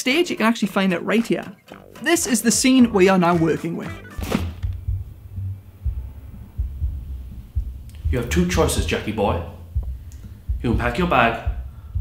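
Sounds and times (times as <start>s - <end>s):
muffled bass throbbing: 4.5s - 12.0s.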